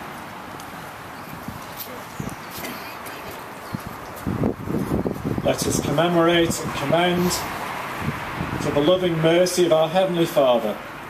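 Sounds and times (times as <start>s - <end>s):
steady low hiss: 0.0s - 11.0s
footsteps on paving: 0.1s - 5.3s
faint shuffling: 0.1s - 6.0s.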